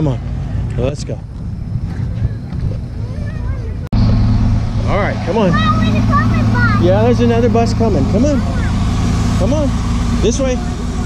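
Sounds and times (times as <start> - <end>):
bus engine idling: 0.0 - 11.0
low outdoor rumble: 0.0 - 11.0.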